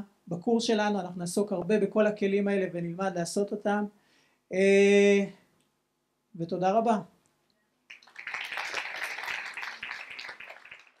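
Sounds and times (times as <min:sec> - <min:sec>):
audience applauding: 0:07.9 - 0:11.0.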